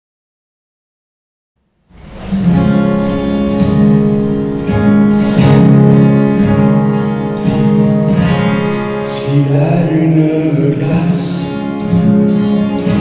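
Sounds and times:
acoustic guitar strumming: 1.6s - 13.0s.

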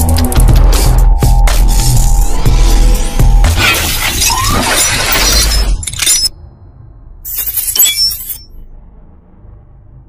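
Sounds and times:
glass shattering effect: 3.6s - 6.4s, 7.3s - 8.6s.

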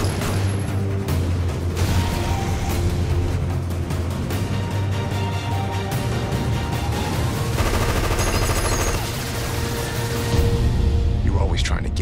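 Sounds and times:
loud trailer music: 0.0s - 12.0s
machine-gun fire: 7.6s - 9.7s.

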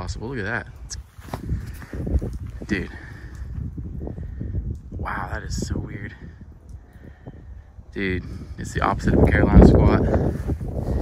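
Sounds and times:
low rumble on microphone: 0.0s - 11.0s
footsteps soft thuds: 1.0s - 3.8s.

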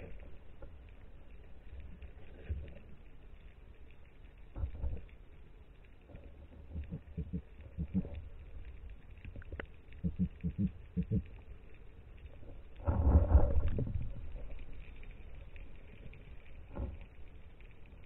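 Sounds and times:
underwater rushing rumble: 12.6s - 15.9s.

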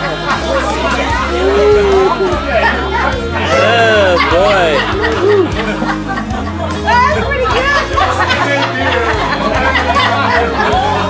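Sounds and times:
instrumental song: 0.0s - 11.0s
people chattering and laughing: 0.0s - 11.0s.

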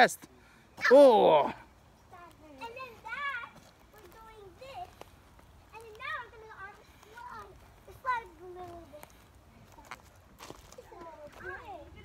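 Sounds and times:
girls talking and calling out: 0.8s - 12.0s.

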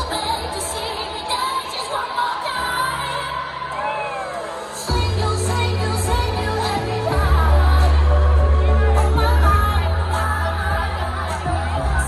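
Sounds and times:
woman singing into a microphone: 0.0s - 12.0s
heavy bass line: 4.9s - 12.0s.

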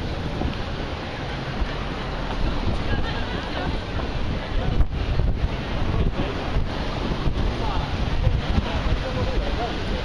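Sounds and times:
busy pedestrian street noise: 0.0s - 10.0s
wind buffeting microphone: 0.0s - 10.0s.

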